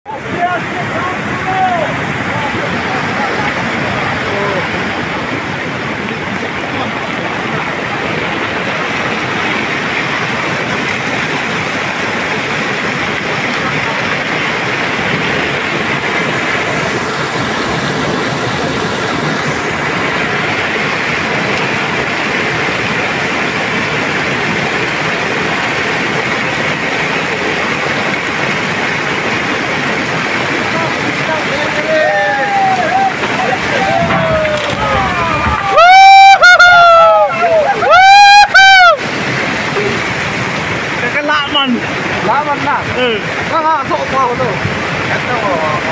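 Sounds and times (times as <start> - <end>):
flood torrent rushing: 0.0 - 45.9.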